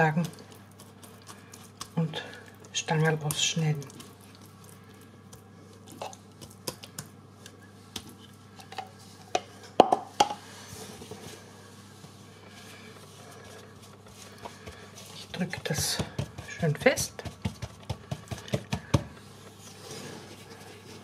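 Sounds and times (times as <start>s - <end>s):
low steady hum: 0.0s - 21.0s
spatula scraping dough: 12.7s - 18.9s.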